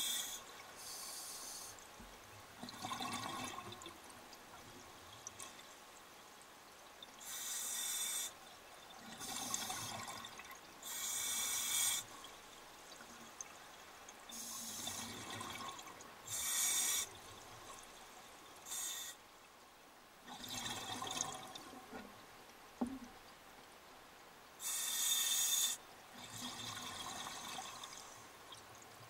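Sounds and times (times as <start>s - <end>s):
scuba regulator breathing: 0.0s - 1.8s, 24.6s - 25.8s.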